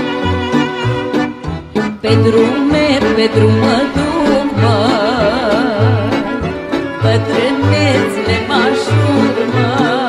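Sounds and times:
fiddle melody with vibrato: 0.0s - 10.0s.

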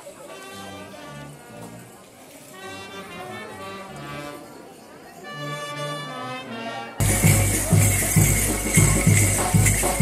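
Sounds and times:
brass band playing: 0.1s - 10.0s.

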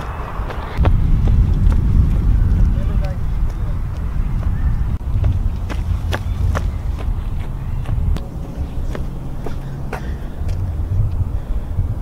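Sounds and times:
low rumble on microphone: 0.0s - 12.0s.

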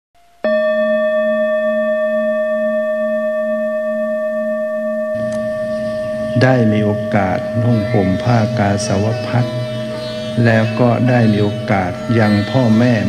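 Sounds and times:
bell ringing: 0.4s - 13.0s
soft low music: 0.4s - 13.0s
low wavering hum: 2.0s - 13.0s.

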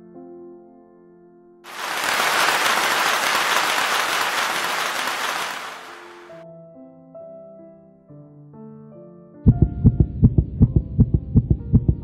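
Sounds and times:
soft piano music: 6.2s - 12.0s.

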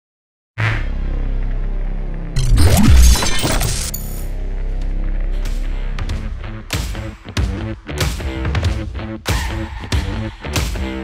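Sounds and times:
low music drone: 0.9s - 2.9s, 3.6s - 7.8s
loud crash sound effect: 2.4s - 4.0s.

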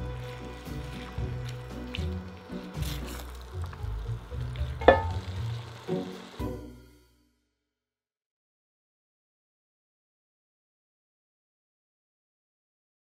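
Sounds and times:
spatula stirring: 0.0s - 6.3s
vegetables sizzling in a pan: 0.0s - 6.8s
background music: 0.0s - 7.4s
utensil clacking against pan: 4.8s - 5.3s.

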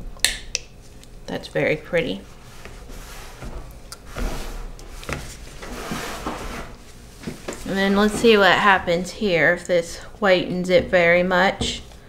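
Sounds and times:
spatula scraping plastic pitcher: 2.6s - 9.7s.

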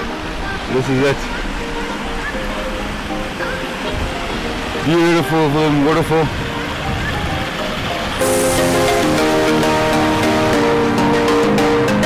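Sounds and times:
background music with held chords: 0.0s - 12.0s
waterfall rushing: 0.0s - 12.0s.

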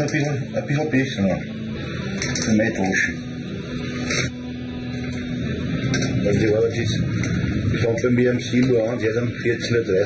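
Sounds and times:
industrial machinery hum: 3.2s - 10.0s.

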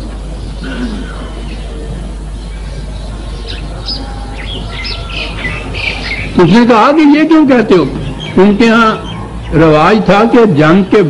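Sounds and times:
birds chirping: 0.0s - 11.0s
steady low hum and hiss: 0.0s - 11.0s.

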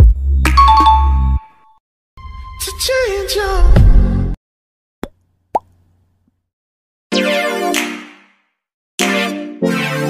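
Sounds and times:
music jingle: 0.6s - 2.8s.

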